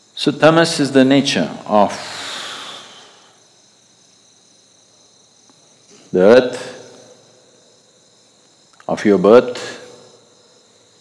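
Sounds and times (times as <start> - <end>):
crickets chirring: 0.0 - 11.0
breathy exhale: 1.9 - 3.4.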